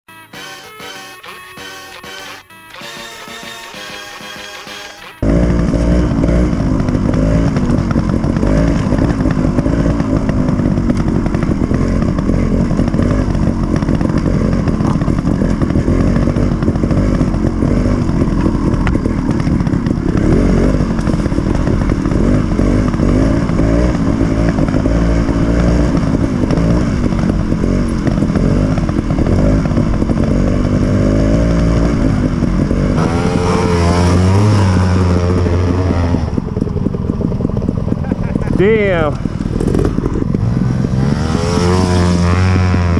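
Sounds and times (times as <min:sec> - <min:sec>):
motorcycle engine revving: 0:03.2 - 0:42.9.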